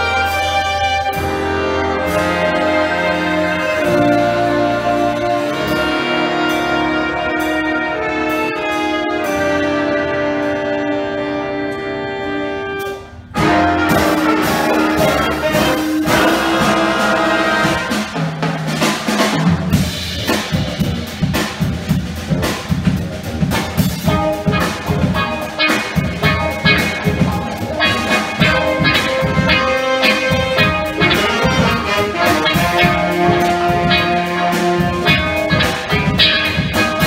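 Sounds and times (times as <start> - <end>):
jazz big band playing: 0.0 - 37.0
steady drum beat: 13.4 - 37.0.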